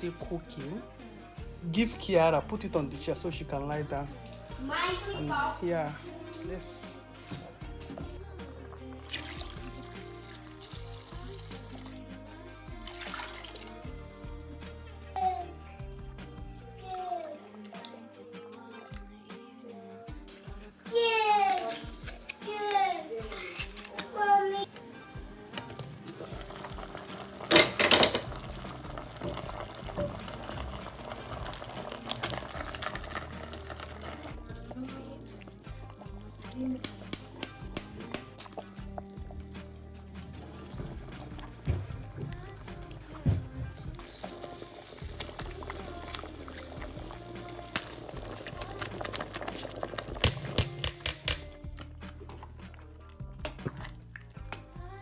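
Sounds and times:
background music: 0:00.0 - 0:55.0
child's voice: 0:04.6 - 0:05.6, 0:15.1 - 0:15.8, 0:16.7 - 0:18.0, 0:20.8 - 0:24.8
liquid poured into a pot: 0:08.8 - 0:13.9, 0:25.4 - 0:39.4, 0:40.2 - 0:54.6.

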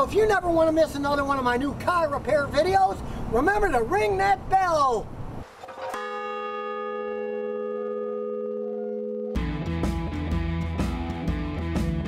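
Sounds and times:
large bell ringing: 0:05.8 - 0:09.7.

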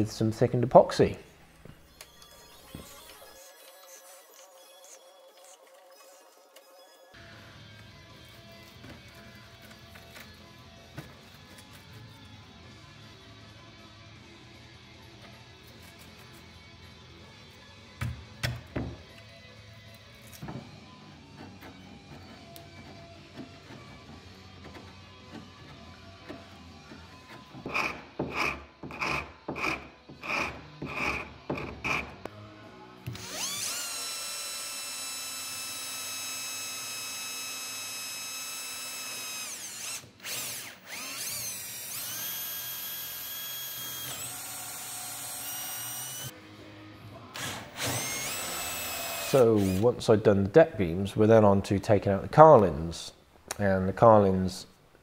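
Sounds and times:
cordless drill driving screw: 0:33.1 - 0:46.3, 0:47.4 - 0:49.9.

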